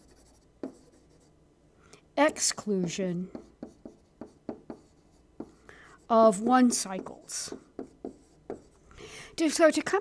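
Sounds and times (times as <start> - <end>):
stylus scratching on tablet: 0.0 - 1.3, 2.8 - 8.8.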